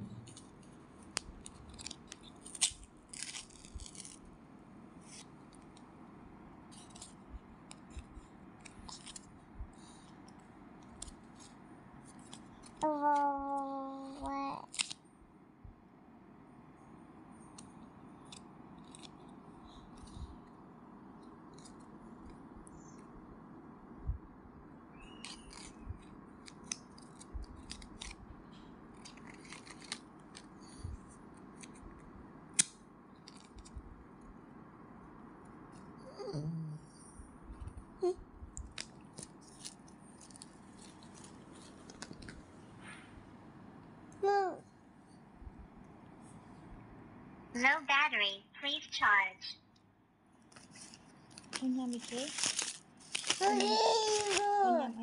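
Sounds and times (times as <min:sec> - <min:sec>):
paper cards clicking and rustling: 0:00.2 - 0:04.3, 0:06.7 - 0:09.3, 0:10.0 - 0:12.8, 0:14.7 - 0:15.0, 0:17.5 - 0:19.3, 0:25.0 - 0:30.6, 0:31.4 - 0:33.8, 0:38.6 - 0:42.5, 0:50.5 - 0:54.6.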